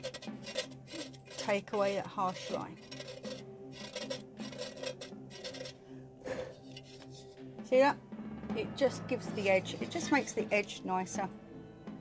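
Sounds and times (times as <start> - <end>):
blade scraping plaster: 0.0 - 7.4.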